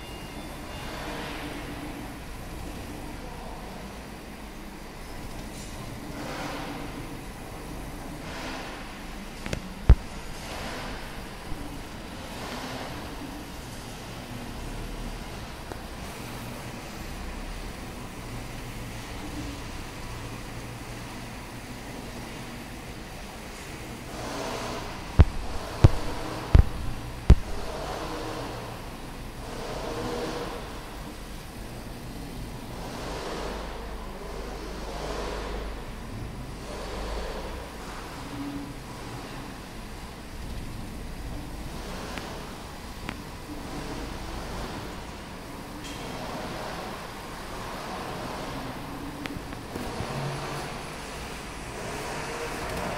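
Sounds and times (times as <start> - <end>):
laser cutting machine humming: 0.0 - 52.9
sharp knocks: 25.2 - 27.7.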